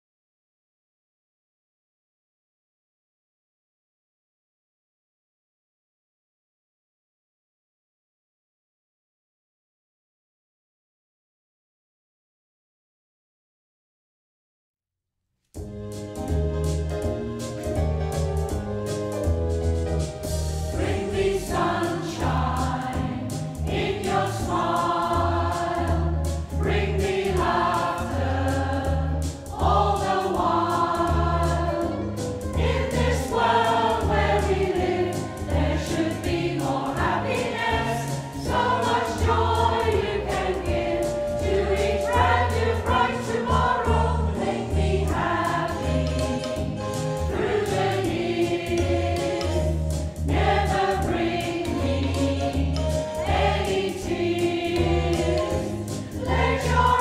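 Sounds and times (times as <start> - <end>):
instrumental accompaniment with bass: 15.6 - 57.0
choir singing: 20.7 - 57.0.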